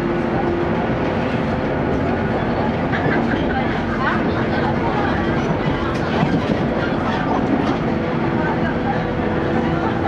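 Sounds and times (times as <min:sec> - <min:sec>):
train wheels rolling on rails: 0:00.0 - 0:10.0.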